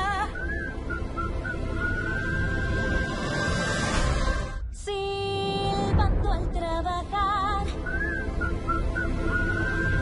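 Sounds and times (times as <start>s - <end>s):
person whistling a tune: 0.2s - 3.0s, 7.8s - 10.0s.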